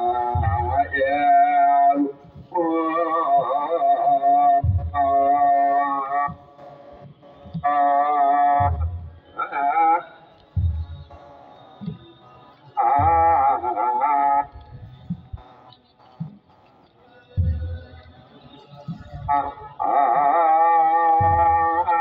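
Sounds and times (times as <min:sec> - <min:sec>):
deep drum beats: 0:00.0 - 0:01.1, 0:04.6 - 0:05.4, 0:08.6 - 0:09.2, 0:10.4 - 0:12.0, 0:12.8 - 0:13.7, 0:14.4 - 0:16.6, 0:17.4 - 0:18.1, 0:21.1 - 0:22.0
liturgical chant singing: 0:00.0 - 0:22.0.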